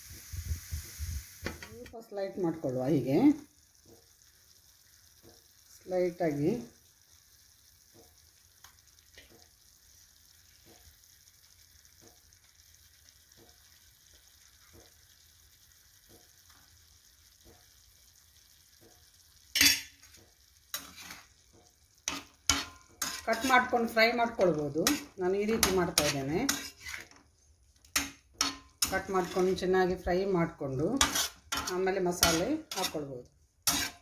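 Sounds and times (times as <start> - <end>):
spices sizzling in a pan: 0.0 - 34.0.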